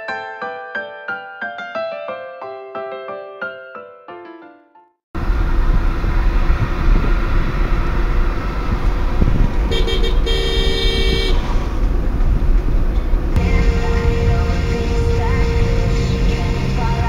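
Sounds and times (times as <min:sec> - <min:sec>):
road and engine noise in car: 0:05.2 - 0:17.0
car horn: 0:09.7 - 0:11.6.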